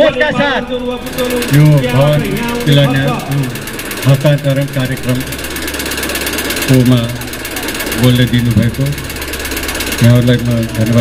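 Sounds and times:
man speaking over loudspeaker: 0.0 - 5.4, 6.7 - 7.2, 8.0 - 9.1, 10.0 - 11.0
fine rapid electrical buzz: 0.4 - 11.0.

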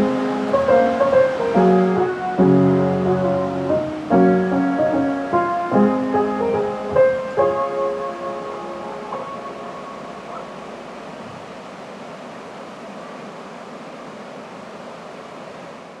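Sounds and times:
piano music: 0.0 - 11.0
outdoor ambience rushing noise: 0.0 - 16.0.

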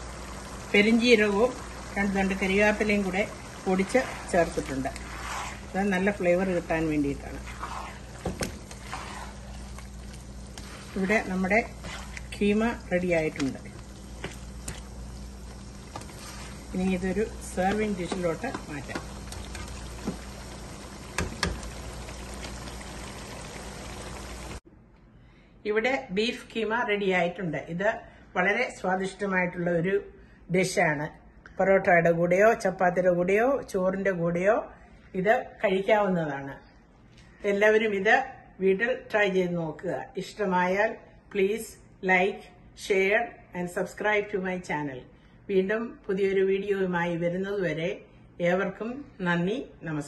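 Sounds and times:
woman speaking: 0.7 - 5.0, 5.7 - 7.8, 10.9 - 13.8, 16.7 - 19.1, 25.7 - 36.6, 37.4 - 50.0
spoon stirring simmering meat: 2.4 - 23.0.

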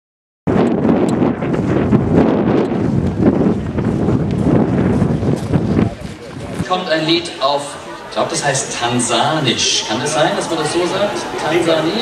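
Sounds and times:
wind buffeting microphone: 0.5 - 12.0.

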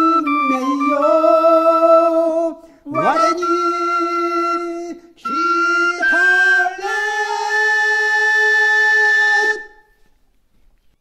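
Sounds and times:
person singing long note: 2.9 - 9.7.

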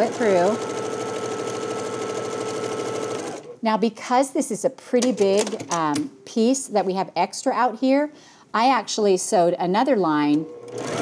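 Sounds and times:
sewing machine running: 0.0 - 3.5, 10.5 - 11.0.

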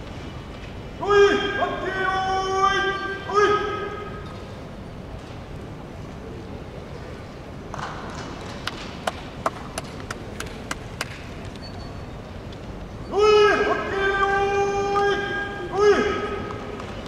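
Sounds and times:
low background hum: 0.0 - 17.0
hand claps: 8.5 - 11.3.

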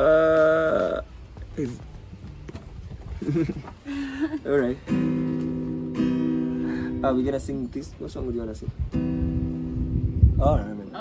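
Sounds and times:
acoustic guitar strummed: 4.8 - 7.9, 8.8 - 10.5.

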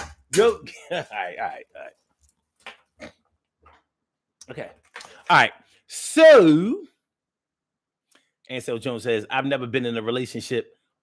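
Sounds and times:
man chuckling: 0.5 - 1.9.

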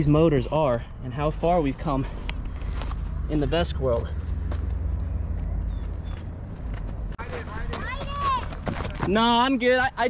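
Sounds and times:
people talking: 7.2 - 10.0.

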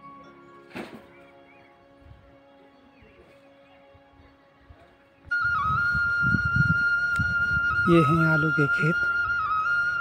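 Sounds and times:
soft flute music: 0.0 - 10.0.

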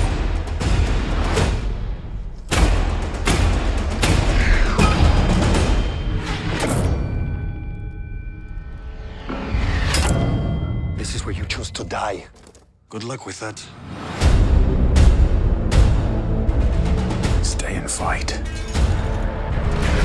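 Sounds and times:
heavy percussion hits and booms: 2.5 - 7.2.

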